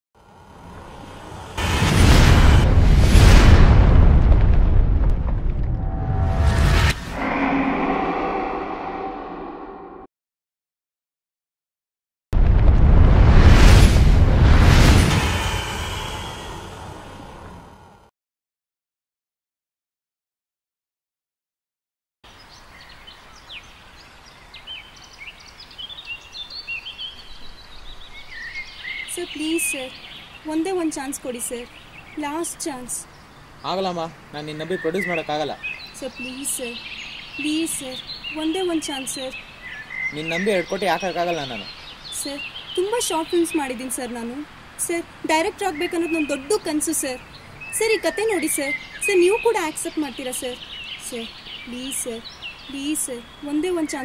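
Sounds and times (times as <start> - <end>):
outdoor background hiss: 0.2 - 1.6, 22.3 - 54.0
low rumble: 1.3 - 10.1, 12.4 - 18.1
boom-like hit with rushing noise: 1.6 - 8.0, 12.4 - 17.2
birds chirping and whistling: 22.8 - 30.6, 34.5 - 43.8, 45.6 - 54.0.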